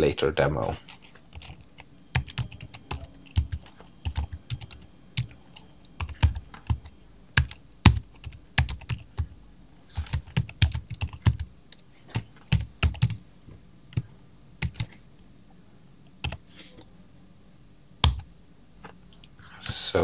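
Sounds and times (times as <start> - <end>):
computer keyboard typing: 0.8 - 9.4, 10.0 - 13.2, 13.9 - 15.0, 16.2 - 16.4, 18.0 - 18.3.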